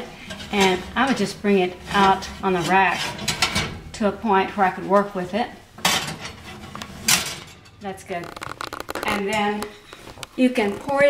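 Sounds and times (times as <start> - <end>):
metal oven rack clattering: 0.0 - 8.2
oven rack scraping on runners: 0.0 - 11.0.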